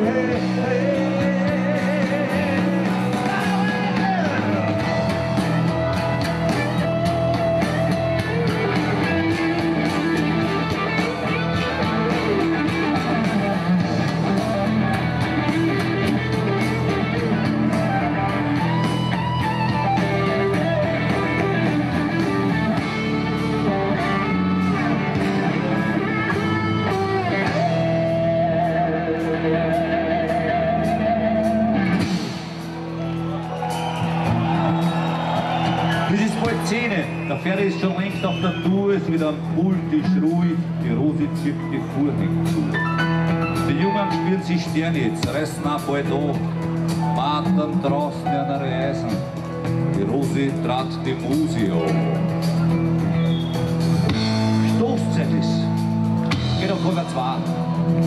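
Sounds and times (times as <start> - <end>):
rock band playing: 0.0 - 58.0
electric guitar solo: 1.6 - 32.2.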